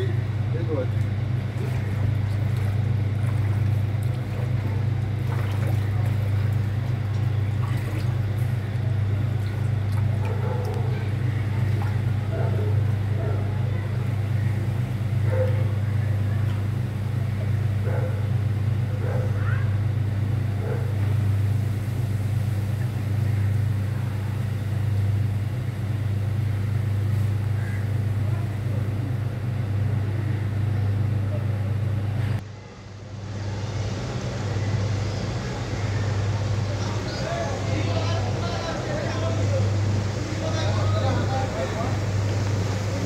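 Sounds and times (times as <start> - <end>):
faint voices: 0.0 - 21.2, 27.2 - 32.4, 33.5 - 43.0
vehicle engine idling hum: 0.0 - 43.0.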